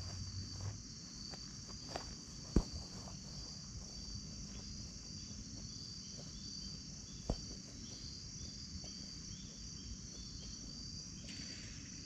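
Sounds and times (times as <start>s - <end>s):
crickets and insects chirping: 0.0s - 12.0s
dull thump: 2.5s - 3.1s, 7.2s - 7.6s.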